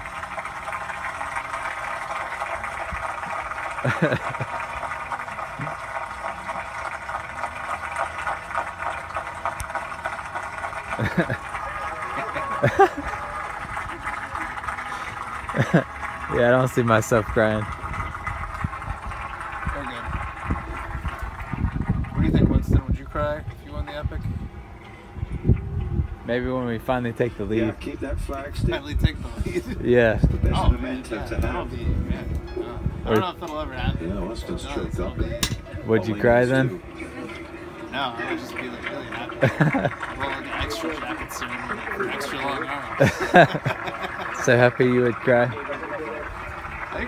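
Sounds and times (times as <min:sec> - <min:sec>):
low rumbling noise: 0:00.0 - 0:44.5
faint voices: 0:04.7 - 0:43.2
person laughing: 0:12.4 - 0:13.2
low rumble: 0:17.6 - 0:26.8.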